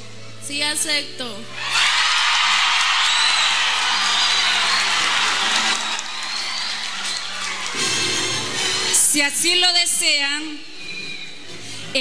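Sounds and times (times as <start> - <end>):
faint background music: 0.0 - 12.0
whoops: 1.6 - 8.1
crowd applauding and cheering: 1.6 - 9.0.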